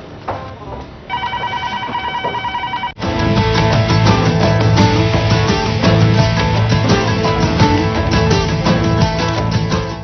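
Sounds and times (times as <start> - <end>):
telephone ringing with electronic trill: 1.1 - 3.0.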